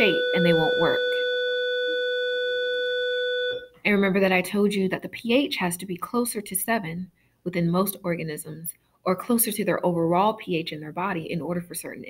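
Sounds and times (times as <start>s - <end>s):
steady electronic tone: 0.0s - 4.2s.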